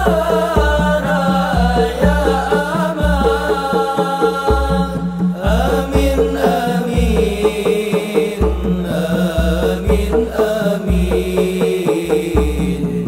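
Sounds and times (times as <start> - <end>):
frame drums: 0.0 - 13.0
group singing devotional chant: 0.0 - 13.0.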